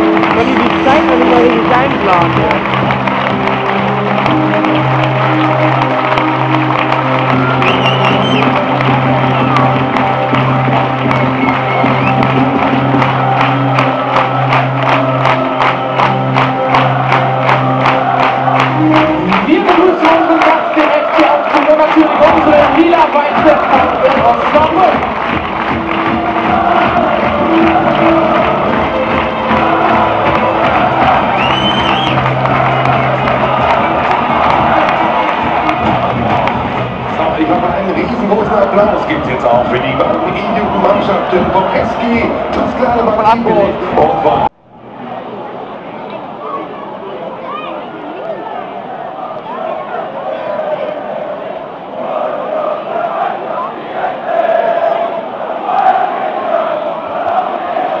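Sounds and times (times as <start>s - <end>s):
music over loudspeakers: 0.0s - 44.5s
crowd cheering: 0.0s - 58.0s.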